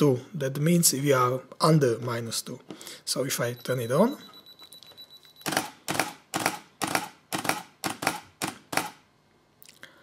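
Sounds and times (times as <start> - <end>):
thin steady beep: 3.2 - 5.6.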